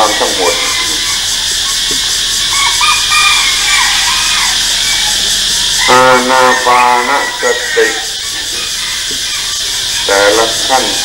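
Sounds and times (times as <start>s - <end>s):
faint high chirps: 0.0s - 11.0s
video tape hiss: 0.0s - 11.0s.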